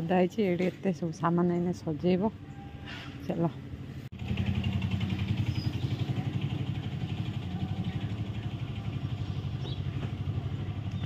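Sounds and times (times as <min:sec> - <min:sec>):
small engine running: 0:04.2 - 0:11.0.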